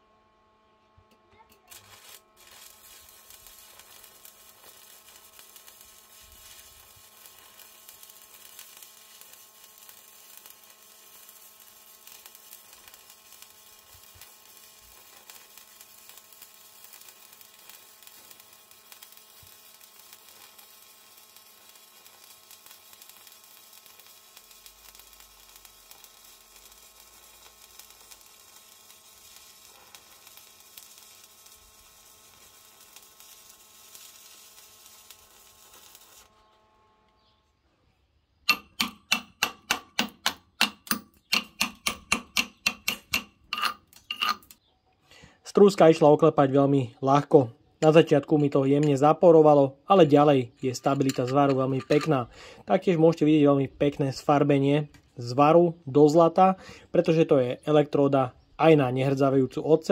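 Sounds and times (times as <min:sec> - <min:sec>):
welding arc hissing: 0:01.4 - 0:37.3, 0:38.4 - 0:44.6, 0:49.9 - 0:52.8
chipping hammer striking weld: 0:01.5 - 0:36.3, 0:38.4 - 0:44.6.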